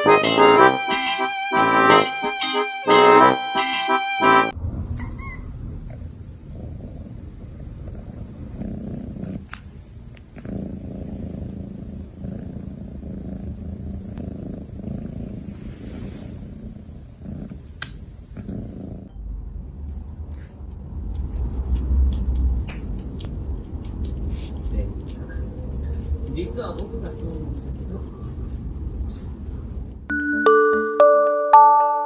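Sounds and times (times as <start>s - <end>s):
deep rumble: 4.6s - 20.1s
cat purring: 5.9s - 19.2s.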